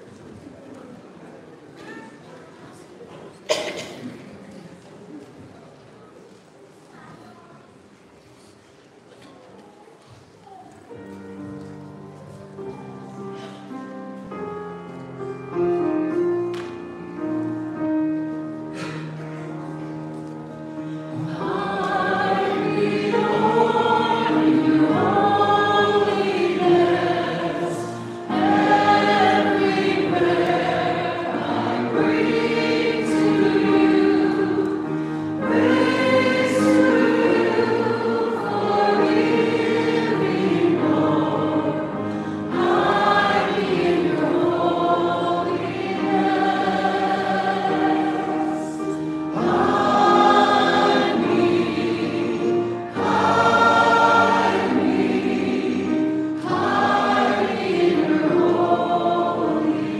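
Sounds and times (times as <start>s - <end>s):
held accompaniment notes: 10.9s - 59.9s
group singing a hymn: 20.8s - 59.9s.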